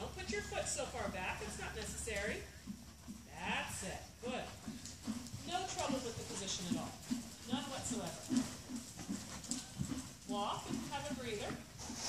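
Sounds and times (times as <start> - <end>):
horse hoofbeats trotting: 0.0 - 12.0.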